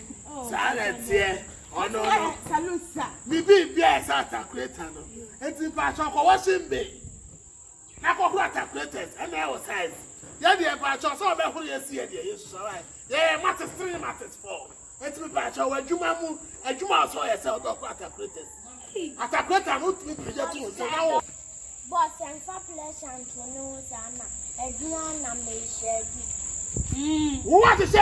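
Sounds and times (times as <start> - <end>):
people talking: 0.0 - 7.0, 8.0 - 21.2, 21.9 - 28.0
insects chirring: 0.0 - 28.0.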